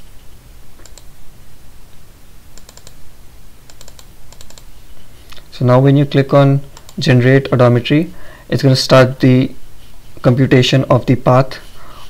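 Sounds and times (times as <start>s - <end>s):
computer mouse clicking: 0.8s - 1.1s, 2.6s - 3.0s, 3.7s - 4.7s, 6.8s - 7.1s.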